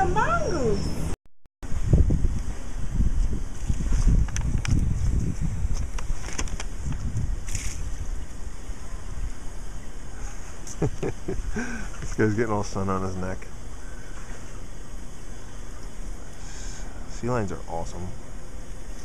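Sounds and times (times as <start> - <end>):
wind rumble on microphone: 0.0 - 10.3.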